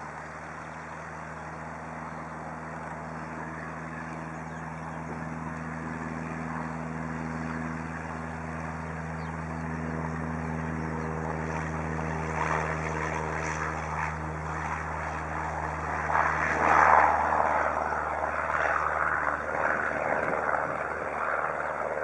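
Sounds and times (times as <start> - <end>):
propeller plane engine drone: 0.0 - 22.0.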